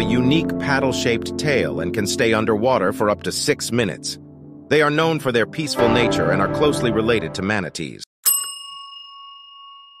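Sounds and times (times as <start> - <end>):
bright bell ding: 8.2 - 10.0.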